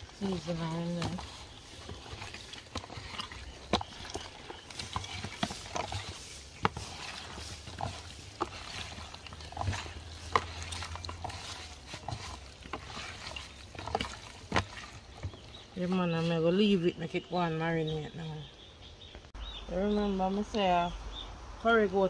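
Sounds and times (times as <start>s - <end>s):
hands squelching raw meat: 0.0s - 16.8s.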